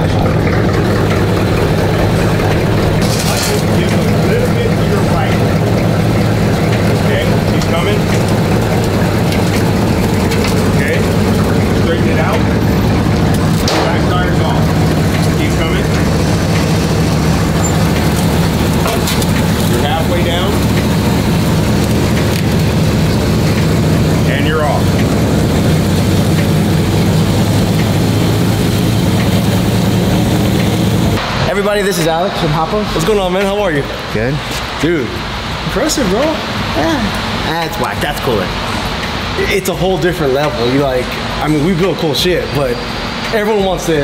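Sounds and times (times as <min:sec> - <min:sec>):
car engine idling: 0:00.0 - 0:44.0.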